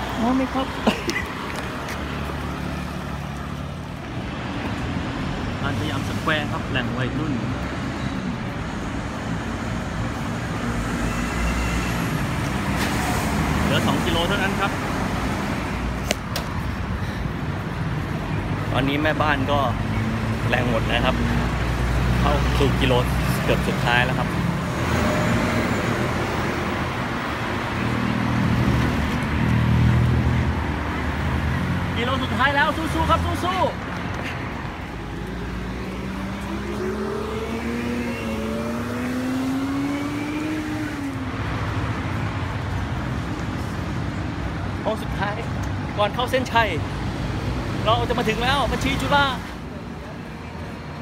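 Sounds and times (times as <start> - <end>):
car engines passing: 0.0 - 51.0
city road traffic rumble: 0.0 - 51.0.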